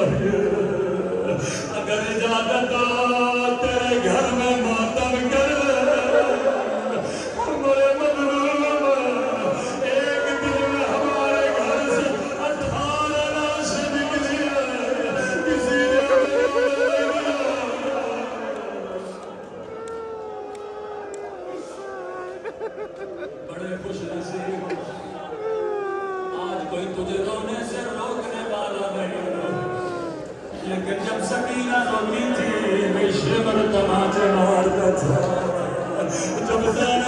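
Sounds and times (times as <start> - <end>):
man chanting a lament: 0.0 - 22.5, 23.6 - 37.0
man chanting held notes: 9.5 - 22.1.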